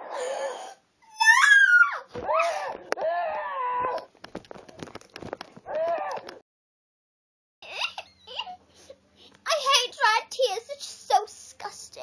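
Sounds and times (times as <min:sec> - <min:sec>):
girl mock wailing: 0:01.1 - 0:04.0.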